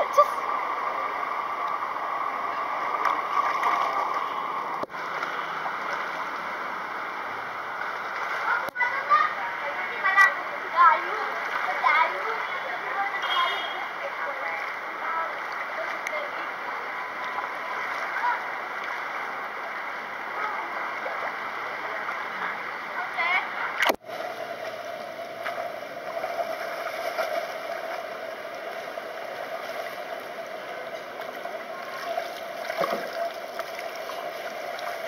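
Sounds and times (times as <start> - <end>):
pool water splashing and lapping: 0.0 - 35.0.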